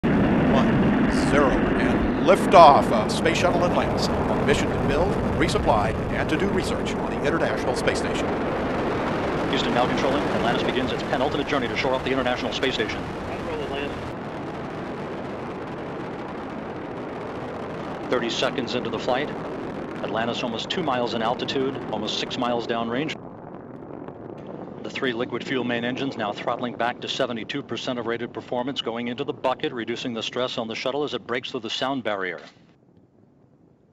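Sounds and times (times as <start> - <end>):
rocket engines rumbling: 0.0 - 32.5.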